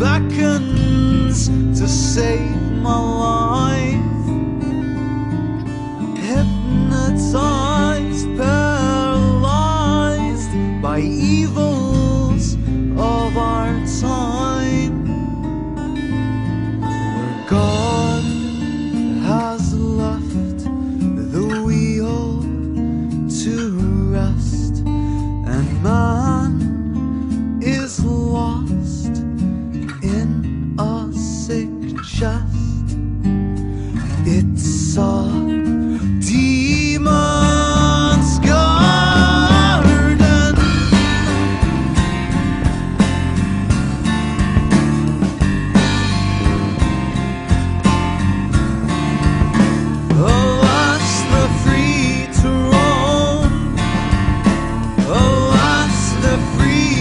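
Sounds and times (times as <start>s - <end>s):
alternative rock music: 0.0s - 57.0s
sliding melodic line: 36.5s - 57.0s.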